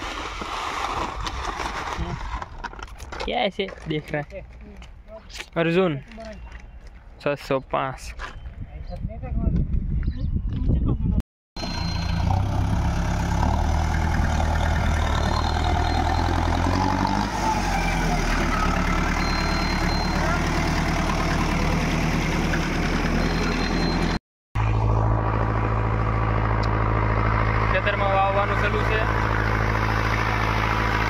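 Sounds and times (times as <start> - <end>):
tractor diesel engine running: 11.6 - 31.0.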